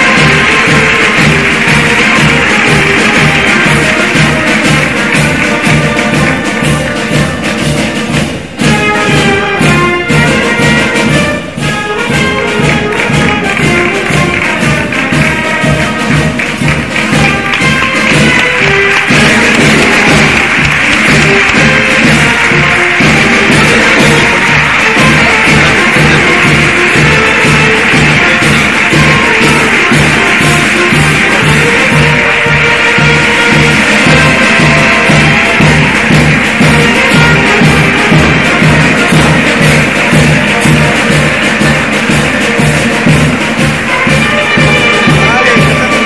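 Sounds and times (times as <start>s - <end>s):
audience applause: 0.0s - 8.1s, 12.0s - 46.0s
brass band playing a march: 0.0s - 46.0s.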